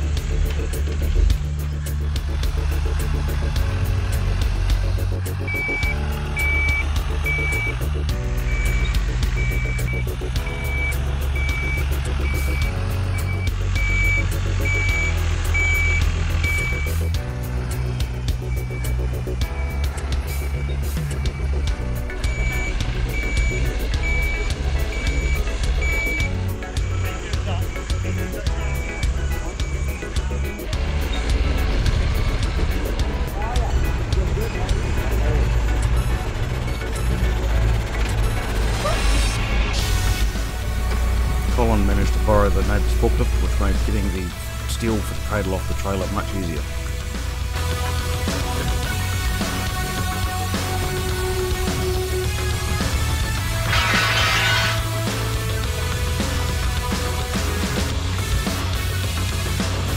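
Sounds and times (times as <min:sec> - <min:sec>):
background music: 0:00.0 - 0:59.9
truck reversing alarm beeping: 0:02.6 - 0:33.0, 0:33.7 - 0:59.5.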